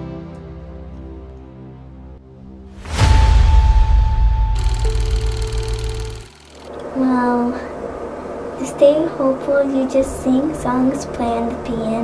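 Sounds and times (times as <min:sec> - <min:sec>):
steady held tone: 0:04.1 - 0:07.0
fast mechanical ticking: 0:04.6 - 0:06.8.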